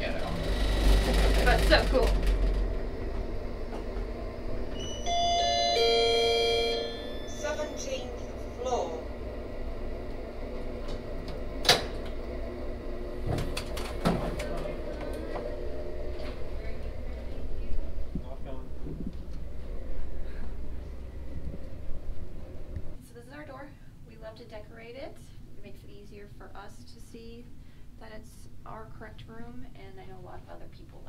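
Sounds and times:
elevator doors knocking: 0.0 - 7.8
low elevator hum: 0.0 - 31.0
elevator chime: 4.7 - 8.9.

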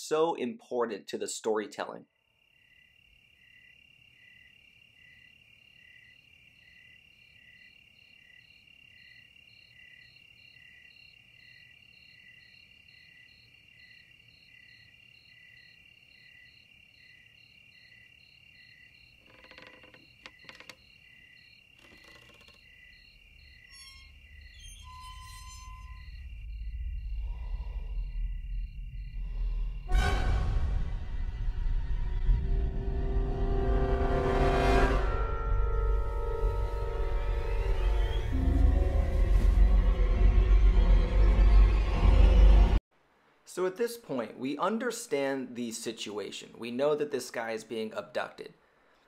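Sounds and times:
crickets chirping: 2.1 - 30.0, 35.0 - 39.8
low rumble: 25.0 - 34.3.

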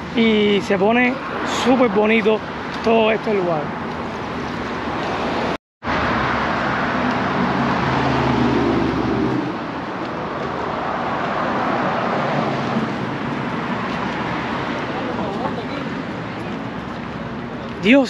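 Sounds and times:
passing road traffic: 0.0 - 18.0.

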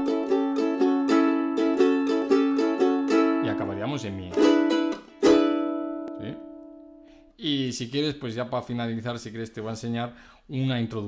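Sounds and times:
ukulele chord ringing: 0.0 - 7.0.

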